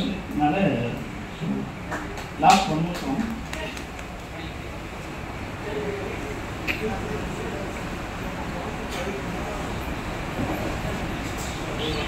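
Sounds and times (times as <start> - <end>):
room background noise: 0.0 - 12.0
faint indistinct voices: 3.0 - 12.0.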